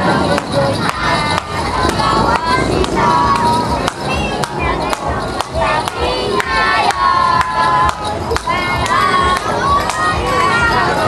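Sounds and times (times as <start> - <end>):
sharp claps: 0.3 - 10.2.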